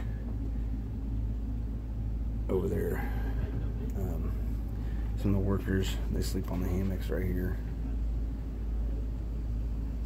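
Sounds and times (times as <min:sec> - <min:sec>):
motor rumbling and humming: 0:00.0 - 0:10.0.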